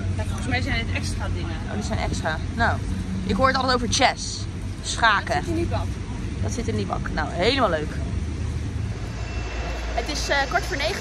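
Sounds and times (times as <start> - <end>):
low rumble of street traffic: 0.0 - 11.0.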